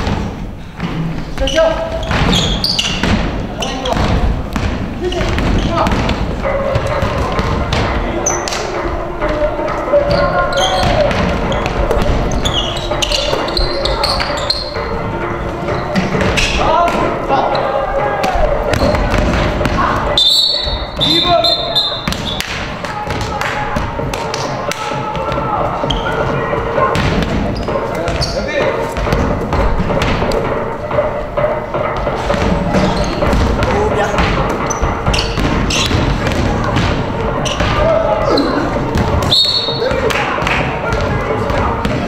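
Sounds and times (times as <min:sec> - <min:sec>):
sneakers squeaking: 0:00.0 - 0:42.0
players calling out: 0:01.4 - 0:29.2
basketball bouncing on hardwood floor: 0:01.9 - 0:08.0, 0:26.8 - 0:28.3, 0:29.0 - 0:30.3, 0:32.2 - 0:37.8
referee's whistle: 0:20.2 - 0:22.4, 0:39.2 - 0:39.8.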